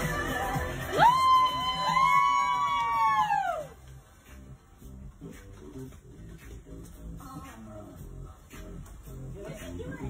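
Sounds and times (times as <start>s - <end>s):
music with a beat: 0.0s - 10.0s
high party whoops: 0.8s - 3.8s.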